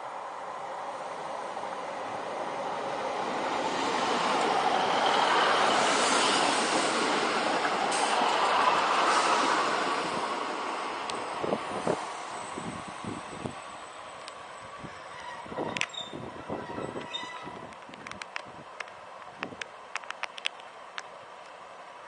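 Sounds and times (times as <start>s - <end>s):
diesel train passing: 0.0s - 20.0s.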